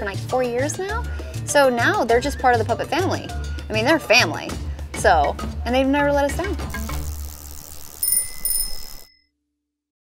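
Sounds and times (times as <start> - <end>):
background music: 0.0 - 7.1
small bell ringing: 7.8 - 9.2.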